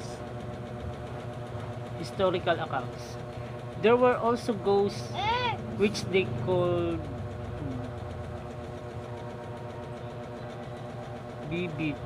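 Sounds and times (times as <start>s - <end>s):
motor humming: 0.0s - 12.0s.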